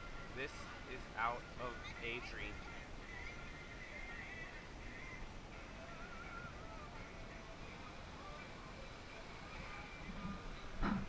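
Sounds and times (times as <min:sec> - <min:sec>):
low outdoor rumble: 0:00.0 - 0:11.0
distant voices calling out: 0:00.3 - 0:05.3.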